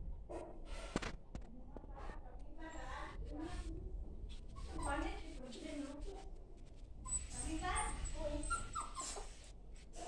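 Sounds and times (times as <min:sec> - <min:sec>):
puppy whimpering: 0:07.1 - 0:09.4.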